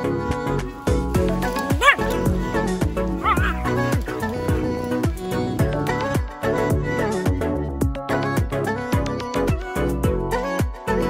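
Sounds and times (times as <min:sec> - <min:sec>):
background music: 0:00.0 - 0:11.0
dog barking: 0:01.4 - 0:04.8.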